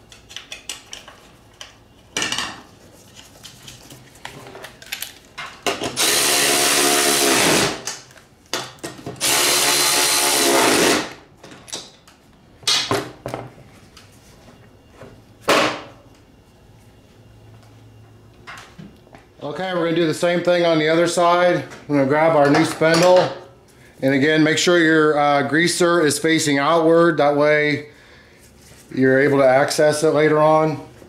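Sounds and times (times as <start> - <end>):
cordless ratchet motor whine: 5.9 - 7.9, 9.2 - 11.2.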